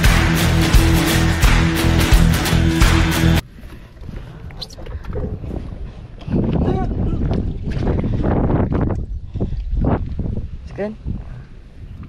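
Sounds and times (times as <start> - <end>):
wind buffeting microphone: 3.5 - 12.0.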